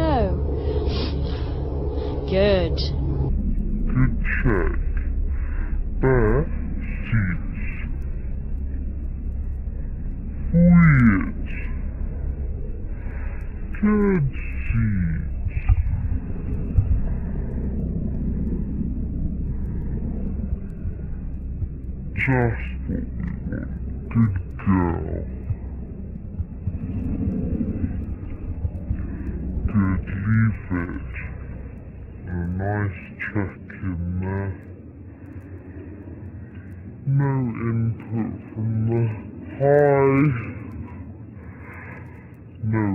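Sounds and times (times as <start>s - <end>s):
wind rumbling on microphone: 0.0s - 42.9s.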